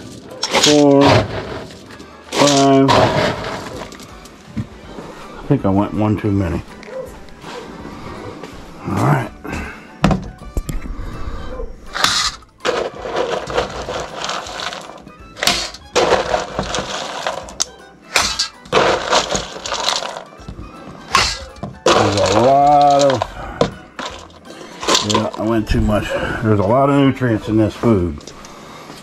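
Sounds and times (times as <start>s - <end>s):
kibble rattling into metal bowls: 0.0s - 4.3s, 12.0s - 20.5s, 21.1s - 26.0s.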